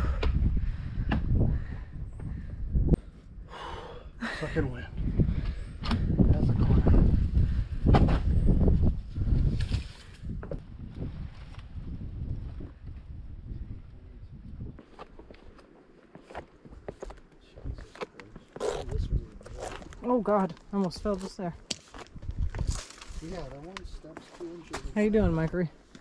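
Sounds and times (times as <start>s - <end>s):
wind buffeting microphone: 0.0s - 3.8s, 4.6s - 15.0s, 22.1s - 23.9s
footsteps on stone steps: 14.6s - 26.0s.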